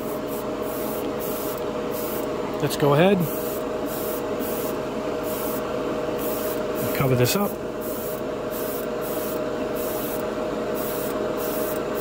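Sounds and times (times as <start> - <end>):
airbrush spraying bursts: 0.0 - 2.3, 3.3 - 5.6, 6.2 - 7.0, 7.8 - 12.0
steady low hum: 0.0 - 12.0.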